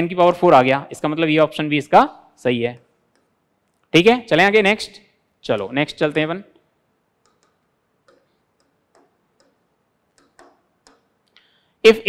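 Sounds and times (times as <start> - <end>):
stylus tapping on screen: 3.0 - 3.8, 7.1 - 11.4.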